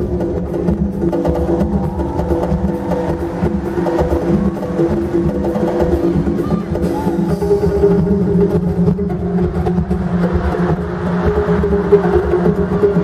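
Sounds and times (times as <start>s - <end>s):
live band playing dance music: 0.0s - 13.0s
timbales and congas: 0.0s - 13.0s.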